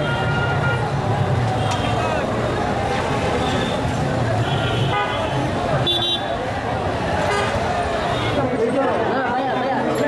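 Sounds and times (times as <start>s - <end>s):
vehicle horns: 0.0s - 2.3s, 3.3s - 6.4s, 7.2s - 8.5s
crowd chatter: 0.0s - 10.0s
street traffic: 0.0s - 10.0s.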